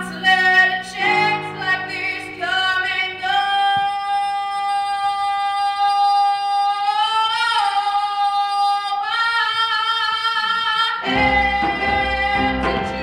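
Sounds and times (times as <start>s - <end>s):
young man singing unaccompanied: 0.0s - 13.0s.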